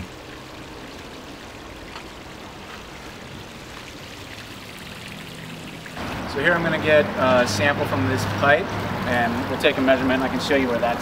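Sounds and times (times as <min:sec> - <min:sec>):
water flowing in a shallow stream: 0:00.0 - 0:11.0.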